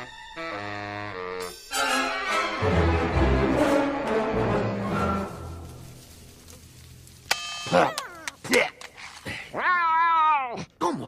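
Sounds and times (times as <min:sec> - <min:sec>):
orchestral music with brass: 0:00.0 - 0:05.9.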